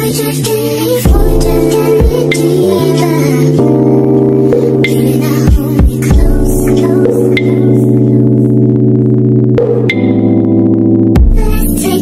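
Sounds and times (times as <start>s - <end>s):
held synth chords: 1.1s - 12.0s.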